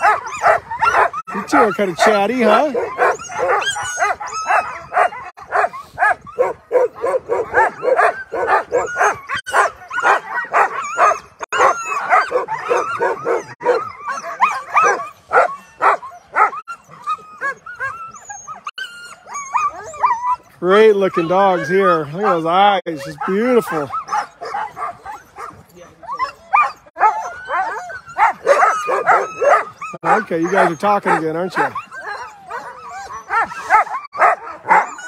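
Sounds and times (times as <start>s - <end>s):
sled dogs barking and yipping: 0.0s - 35.0s.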